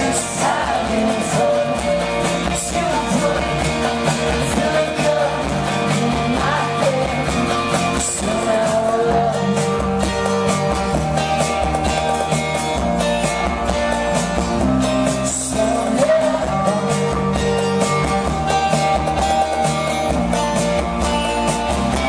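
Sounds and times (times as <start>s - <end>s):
person singing: 0.0s - 10.2s, 14.8s - 17.6s
acoustic band playing live: 0.0s - 22.0s
guitar: 0.0s - 22.0s.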